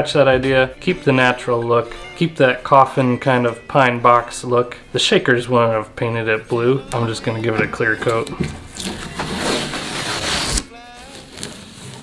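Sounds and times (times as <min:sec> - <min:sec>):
tape ripping off wood: 0:08.6 - 0:12.0.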